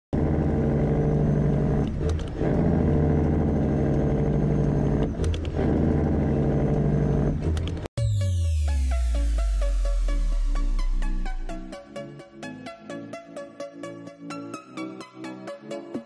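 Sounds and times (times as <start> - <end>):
truck engine running: 0.2 - 7.9.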